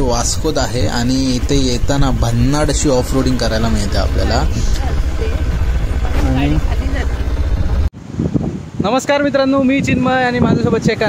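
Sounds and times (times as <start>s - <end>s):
motorcycle engine rumbling: 0.0s - 8.8s.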